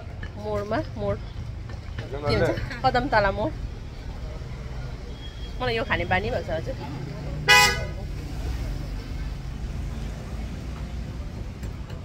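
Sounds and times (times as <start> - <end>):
street traffic rumble: 0.0 - 12.0
vehicle horn beep: 7.5 - 7.9.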